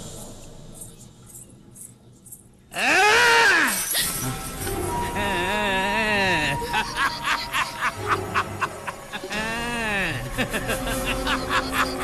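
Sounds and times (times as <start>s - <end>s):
film score with high tone: 0.0s - 12.0s
person wavering cry: 2.8s - 3.9s, 5.1s - 8.0s, 9.2s - 10.5s
cackling laughter: 5.2s - 12.0s.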